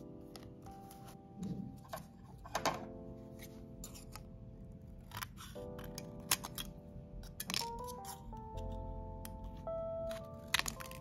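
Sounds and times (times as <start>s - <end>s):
soft background music: 0.0s - 11.0s
scissors snipping foil: 5.0s - 8.3s, 10.1s - 11.0s.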